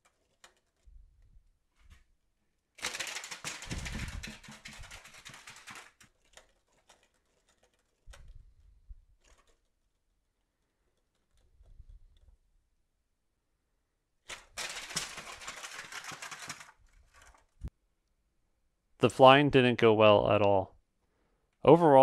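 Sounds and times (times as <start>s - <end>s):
fast plastic clatter: 2.8s - 10.0s, 14.3s - 17.7s.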